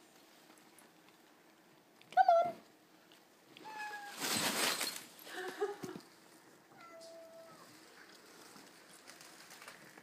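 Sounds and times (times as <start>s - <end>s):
cat meowing: 6.7s - 7.7s.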